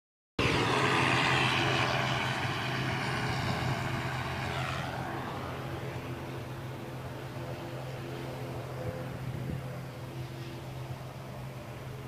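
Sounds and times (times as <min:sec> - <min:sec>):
aircraft engine running: 0:00.4 - 0:12.0.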